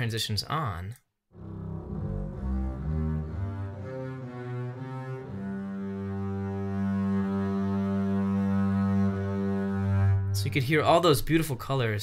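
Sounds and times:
bowed double basses: 0:01.4 - 0:11.5.

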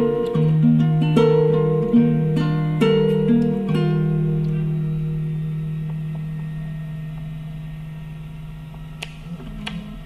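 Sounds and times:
acoustic guitar music: 0:00.0 - 0:10.0.

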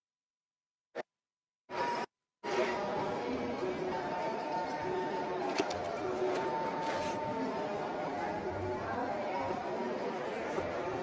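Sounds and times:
crowd chatter: 0:02.4 - 0:11.0.

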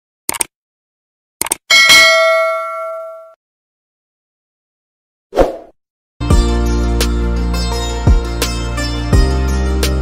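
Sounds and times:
notification bell ding: 0:01.7 - 0:03.4.

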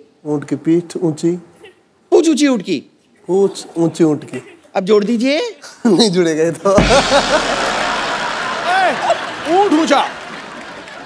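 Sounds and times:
audience laughing and clapping: 0:06.8 - 0:11.0.

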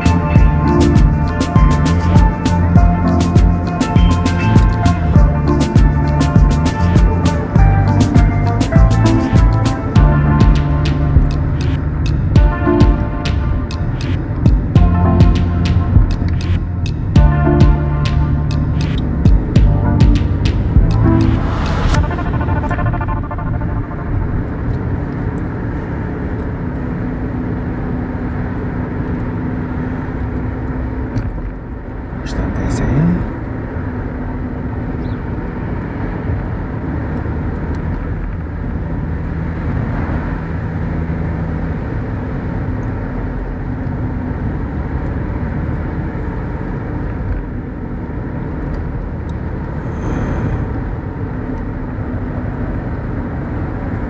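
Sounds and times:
short rising tone: 0:00.0 - 0:25.7, 0:49.8 - 0:51.1
car engine and road noise: 0:00.0 - 0:54.0.

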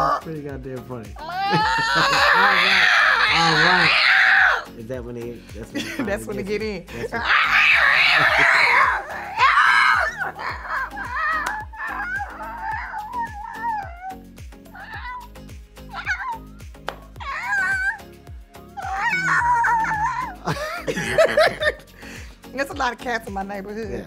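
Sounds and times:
person imitating cat yowls: 0:01.2 - 0:04.6, 0:07.2 - 0:16.6, 0:17.2 - 0:18.1, 0:18.8 - 0:20.5
background music with beat: 0:08.3 - 0:24.0.

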